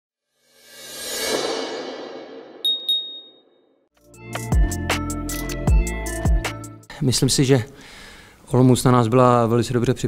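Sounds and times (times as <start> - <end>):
whoosh: 0.4 - 2.6
quick high pings: 2.6 - 3.7.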